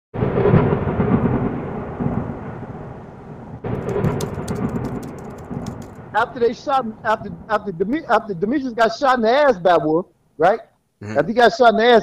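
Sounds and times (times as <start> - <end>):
rolling thunder claps: 0.2 - 6.5
sharp crackling ticks: 3.8 - 6.1.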